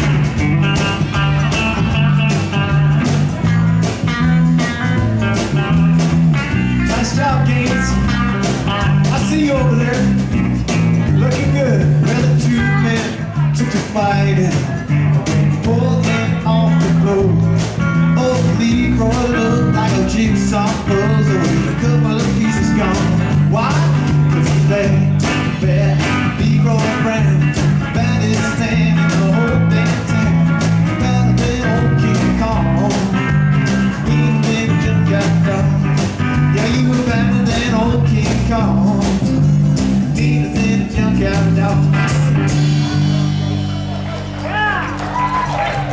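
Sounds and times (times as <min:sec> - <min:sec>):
band playing blues-rock shuffle: 0:00.0 - 0:45.9.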